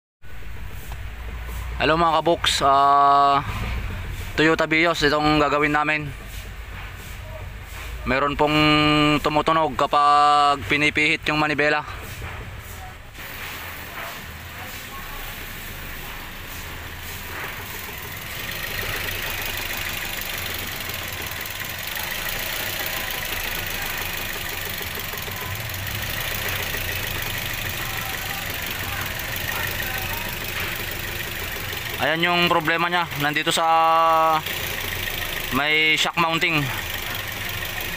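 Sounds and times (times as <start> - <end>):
car engine idling: 0.2 - 37.9.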